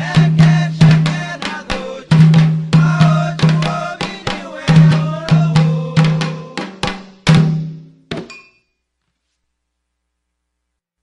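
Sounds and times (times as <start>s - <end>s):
chanted singing: 0.0s - 6.7s
hand drums: 0.0s - 8.0s.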